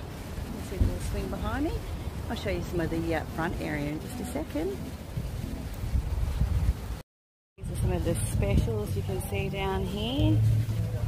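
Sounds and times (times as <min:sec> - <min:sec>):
wind buffeting microphone: 0:00.0 - 0:07.0, 0:07.6 - 0:11.0.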